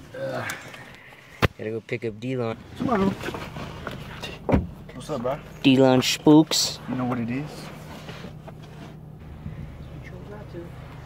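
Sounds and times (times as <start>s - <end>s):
car engine hum from inside: 0.0s - 11.0s.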